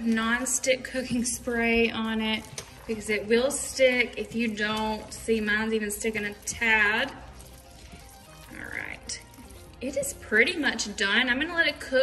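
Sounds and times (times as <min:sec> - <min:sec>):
faint background music: 0:00.0 - 0:12.0
spatula stirring macaroni and cheese: 0:00.0 - 0:12.0.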